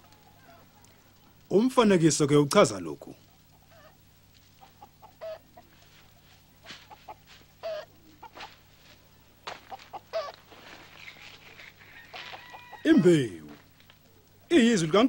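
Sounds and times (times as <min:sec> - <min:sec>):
faint low hum: 0:00.0 - 0:15.0
chickens clucking: 0:03.2 - 0:14.5.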